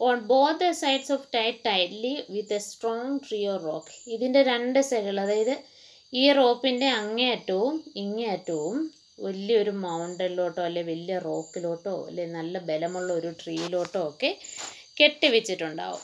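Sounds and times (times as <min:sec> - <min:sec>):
crickets trilling and chirping: 0:00.0 - 0:16.0
person speaking: 0:12.1 - 0:16.0.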